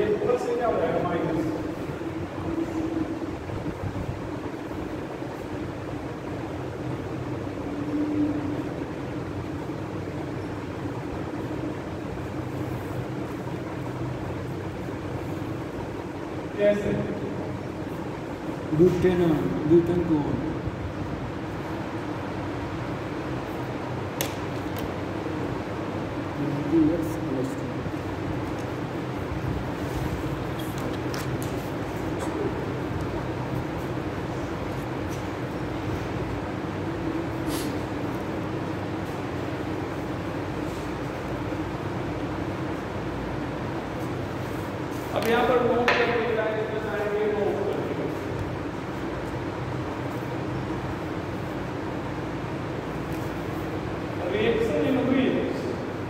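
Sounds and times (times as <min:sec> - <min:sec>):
room fan humming: 0:00.0 - 0:56.0
person speaking: 0:26.3 - 0:28.8, 0:45.0 - 0:48.4.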